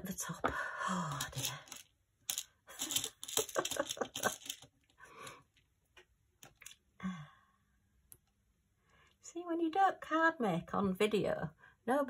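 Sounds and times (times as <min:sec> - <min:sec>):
small gems clicking and rattling: 0:01.0 - 0:04.9, 0:06.4 - 0:06.8.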